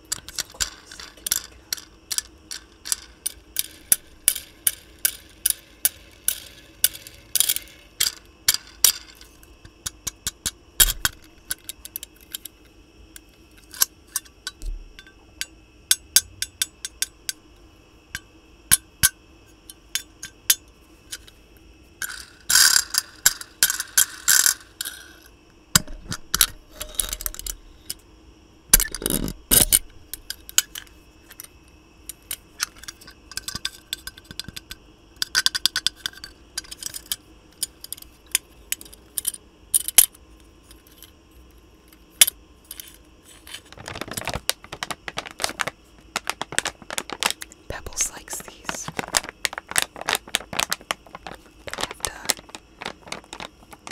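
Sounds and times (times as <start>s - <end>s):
toy wagon rattling: 48.3s - 53.9s.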